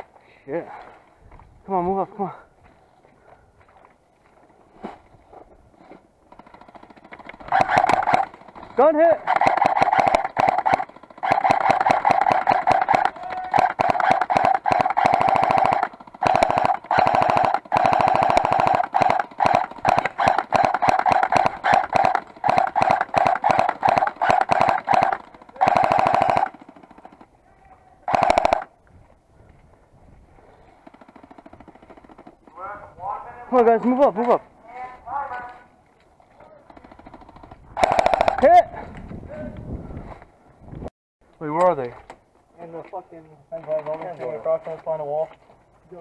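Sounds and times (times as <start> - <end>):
airsoft gun full-auto rattle: 6.3 - 27.4, 28.0 - 28.7, 30.7 - 32.5, 36.6 - 38.5.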